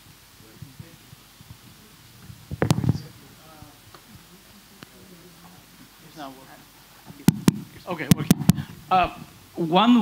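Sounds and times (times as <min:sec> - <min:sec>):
microphone handling thuds and clicks: 0:00.6 - 0:03.2, 0:07.1 - 0:09.4.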